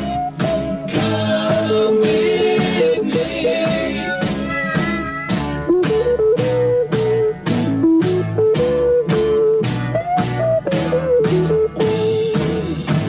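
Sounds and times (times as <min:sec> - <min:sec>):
bass line: 0:00.0 - 0:13.0
electric guitar melody: 0:00.0 - 0:13.0
steady drum beat: 0:00.0 - 0:13.0.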